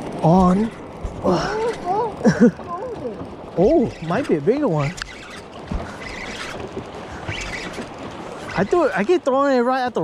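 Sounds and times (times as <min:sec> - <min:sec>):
wind and water rushing: 0:00.0 - 0:10.0
fishing reel cranking: 0:03.5 - 0:09.2
faint high squeaks: 0:03.6 - 0:09.0.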